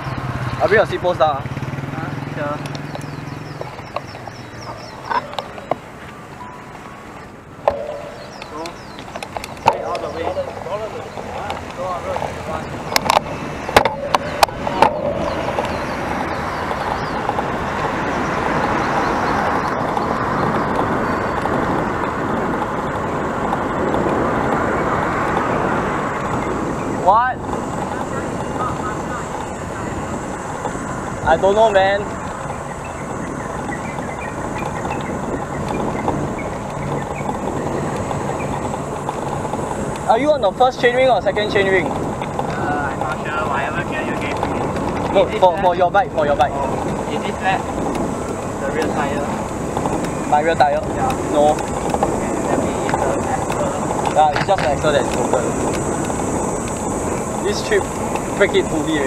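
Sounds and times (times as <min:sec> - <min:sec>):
wind and road noise: 0:00.0 - 0:59.0.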